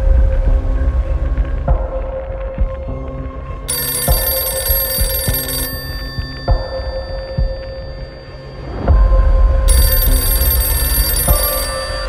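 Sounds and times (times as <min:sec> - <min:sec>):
heavy low rumble: 0:00.0 - 0:03.7, 0:08.9 - 0:12.0
telephone bell ringing: 0:03.7 - 0:08.9, 0:09.7 - 0:12.0.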